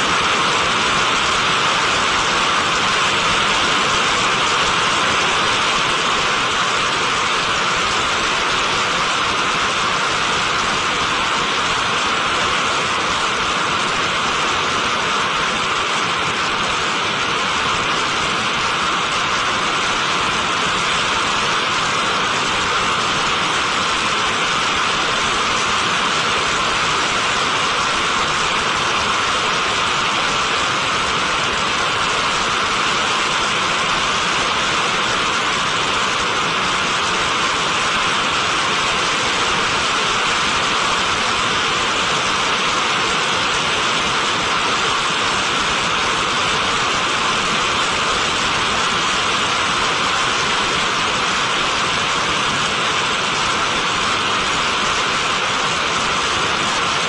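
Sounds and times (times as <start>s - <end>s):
rocket exhaust roaring: 0.0s - 57.0s.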